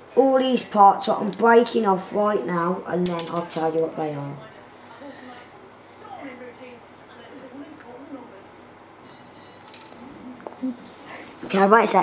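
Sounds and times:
plastic lego pieces handled: 0:03.0 - 0:03.8.

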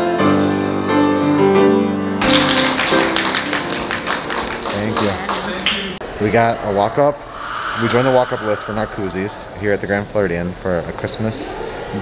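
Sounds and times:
grand piano playing: 0:00.0 - 0:06.0.

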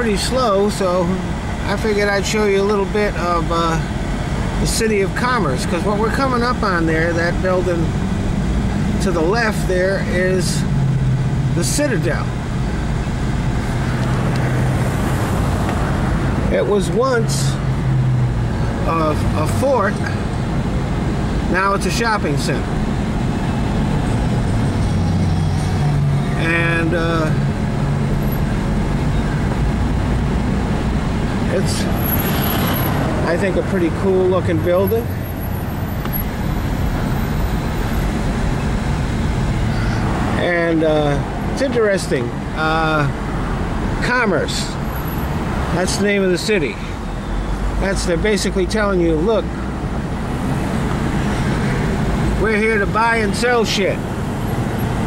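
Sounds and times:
car engine hum: 0:00.0 - 0:55.0
road and tyre noise: 0:00.0 - 0:55.0.

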